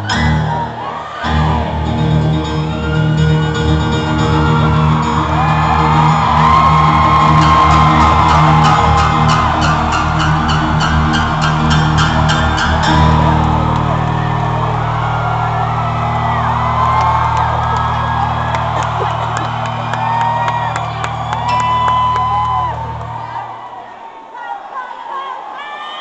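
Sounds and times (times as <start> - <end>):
fans whooping and screaming: 0.0 - 26.0.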